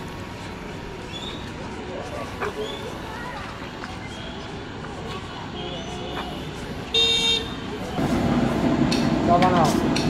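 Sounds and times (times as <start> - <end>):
street background noise: 0.0 - 10.0
voices: 0.6 - 10.0
vehicle horn toot: 5.6 - 7.6.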